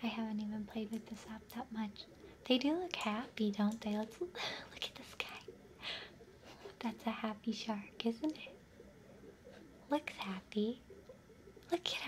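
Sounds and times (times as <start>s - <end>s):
woman whispering: 0.0s - 5.6s, 6.8s - 8.6s, 9.9s - 10.8s, 11.7s - 12.0s.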